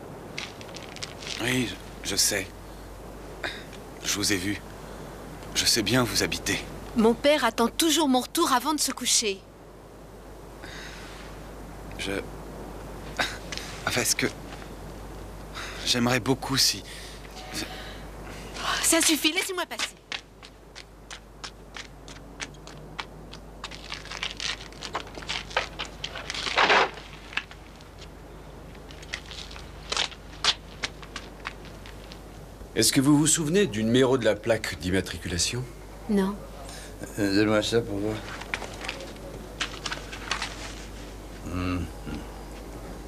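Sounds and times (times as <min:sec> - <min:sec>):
crackles and rustles: 0:00.0 - 0:07.0, 0:11.2 - 0:16.4, 0:18.2 - 0:34.8, 0:37.4 - 0:43.0
low steady hum: 0:00.0 - 0:43.0
paper rustling: 0:00.4 - 0:01.6, 0:23.6 - 0:28.1, 0:28.8 - 0:32.2, 0:38.1 - 0:41.2.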